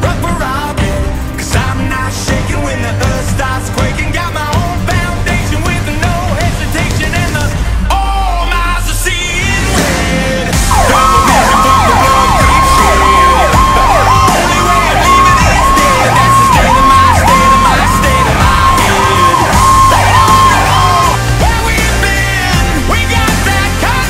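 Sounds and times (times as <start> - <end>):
rock music with heavy beat: 0.0 - 24.0
fire engine siren yelping: 10.6 - 22.5.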